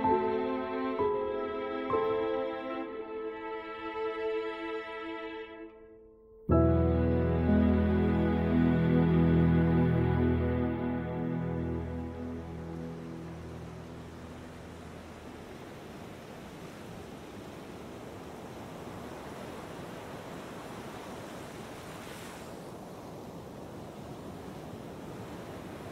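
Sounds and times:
sustained song notes: 6.4 - 15.2.

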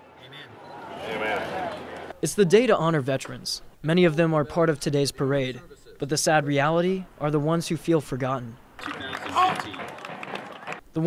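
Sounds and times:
crowd voices: 0.0 - 2.5, 8.8 - 10.8
marching footsteps: 8.8 - 10.8.

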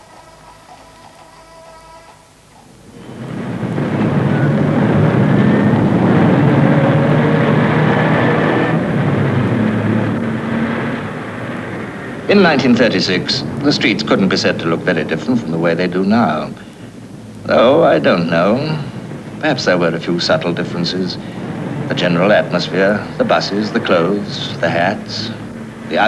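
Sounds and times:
buses and cars running: 0.0 - 26.0
faint steady tones: 0.0 - 26.0.

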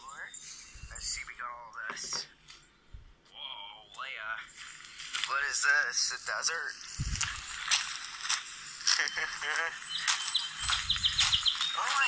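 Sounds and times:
footsteps on gravel: 4.5 - 5.6, 6.2 - 12.0.

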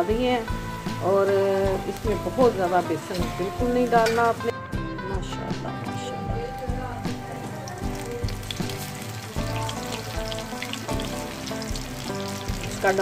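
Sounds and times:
background music: 0.0 - 13.0
batter sizzling in hot oil: 7.2 - 13.0.

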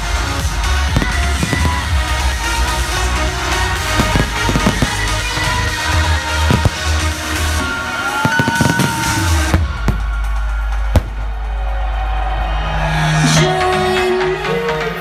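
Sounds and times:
loud electronic dance music: 0.0 - 15.0
fireworks bangs: 0.5 - 11.7.

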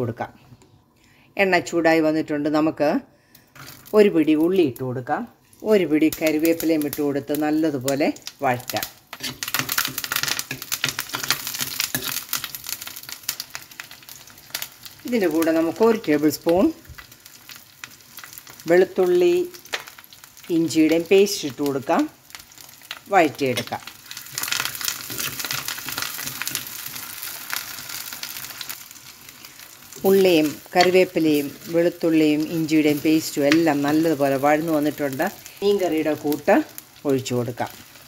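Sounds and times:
food sizzling in hot oil: 3.5 - 38.0
person talking: 23.1 - 23.9, 30.0 - 37.8.

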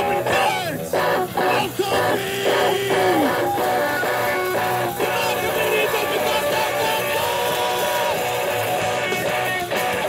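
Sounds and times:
guitar note sliding down: 0.0 - 10.0
live rock band playing: 0.0 - 10.0.

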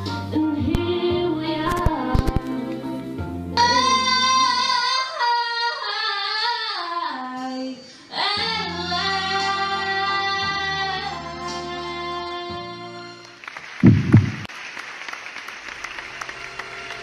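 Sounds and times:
woman singing: 0.0 - 2.9, 3.6 - 13.2.

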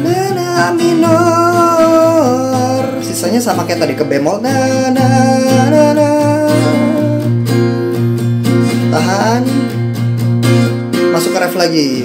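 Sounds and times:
man singing without words: 0.0 - 7.5, 8.7 - 9.8
acoustic guitar strumming: 0.0 - 12.0.

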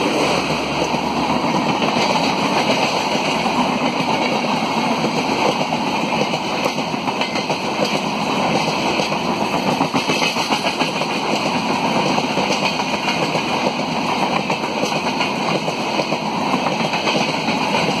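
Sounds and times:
train wheels clattering on rails: 0.0 - 18.0.

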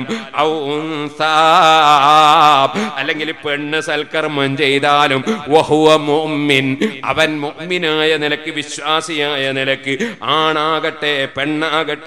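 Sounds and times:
man chanting: 0.0 - 12.0.

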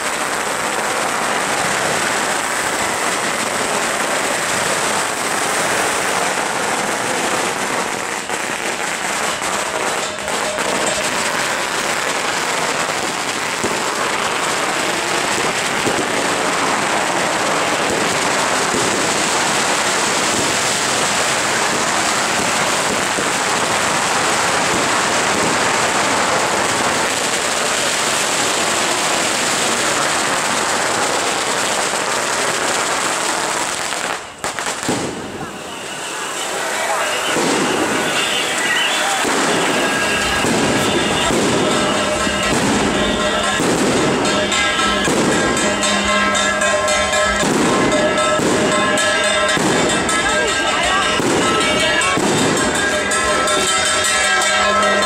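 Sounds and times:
firecrackers crackling: 0.0 - 55.0.

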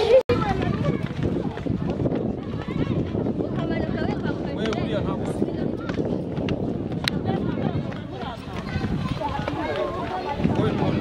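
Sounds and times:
children chattering: 0.0 - 11.0
footsteps on stairs: 4.6 - 11.0.

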